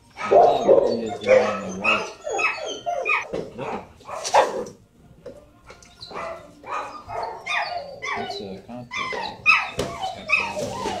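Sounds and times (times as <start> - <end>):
dogs barking and yipping: 0.0 - 4.8, 5.7 - 11.0.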